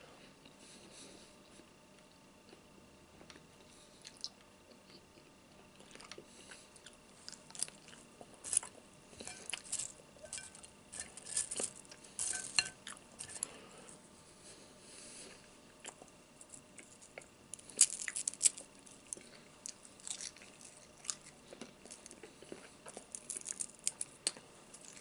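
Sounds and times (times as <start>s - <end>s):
bacon crackling and crunching: 6.8s - 13.6s, 15.7s - 25.0s.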